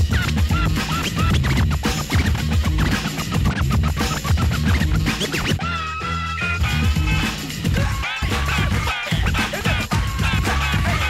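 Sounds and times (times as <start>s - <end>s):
heavy beat: 0.0s - 11.0s
turntable scratches: 0.0s - 11.0s.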